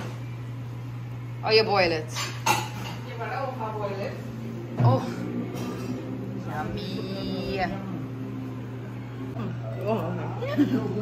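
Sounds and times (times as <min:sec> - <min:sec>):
tableware clinking: 0:02.1 - 0:03.1
people talking: 0:06.5 - 0:08.0.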